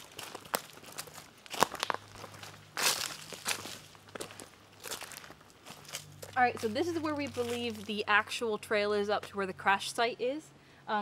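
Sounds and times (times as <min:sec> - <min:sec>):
footsteps on dirt trail: 0:00.0 - 0:08.5.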